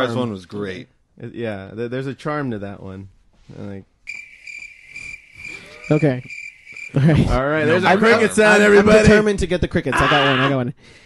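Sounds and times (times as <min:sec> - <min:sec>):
cricket chirping: 0:04.1 - 0:07.3.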